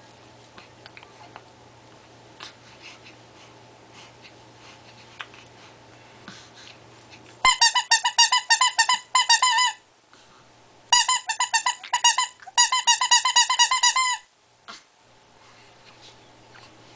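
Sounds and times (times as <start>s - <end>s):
squeaky toy squeaking: 7.4s - 9.8s, 10.9s - 14.3s.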